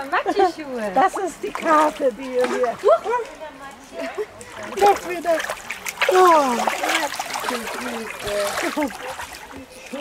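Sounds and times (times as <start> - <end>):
feet splashing through water: 1.3 - 10.0.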